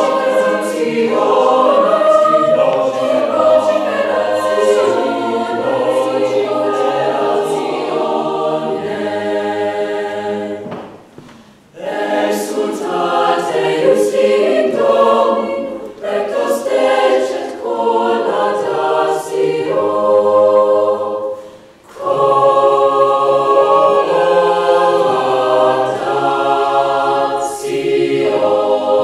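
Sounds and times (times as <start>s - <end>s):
mixed-voice choir singing: 0.0s - 29.0s.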